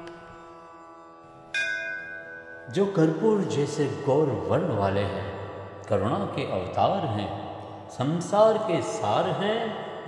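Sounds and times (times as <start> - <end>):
bell ringing: 1.5 - 3.2.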